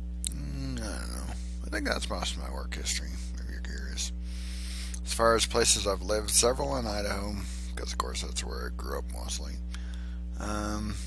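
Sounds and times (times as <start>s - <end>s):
low electrical hum: 0.0s - 11.0s
soft breath: 4.2s - 5.0s, 9.7s - 10.3s.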